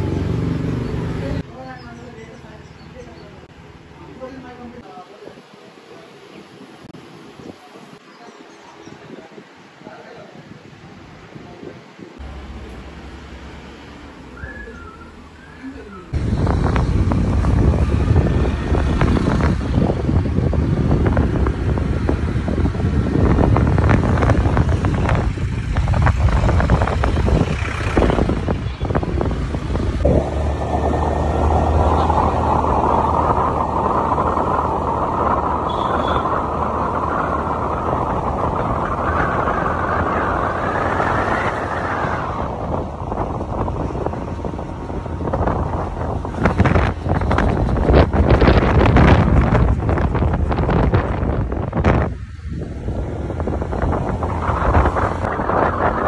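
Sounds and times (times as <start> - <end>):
road noise: 0.0 - 56.0
wind buffeting microphone: 14.4 - 56.0
scooter engine drone: 16.1 - 44.0.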